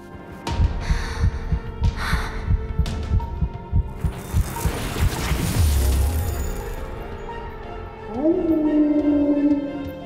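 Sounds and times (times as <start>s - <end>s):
tense music drone: 0.0s - 4.7s
heartbeat thuds: 0.5s - 4.6s.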